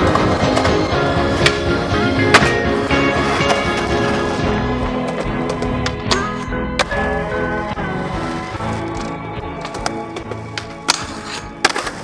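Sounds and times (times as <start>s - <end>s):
background music: 0.0s - 12.0s
skateboard clacking on ground: 8.9s - 12.0s.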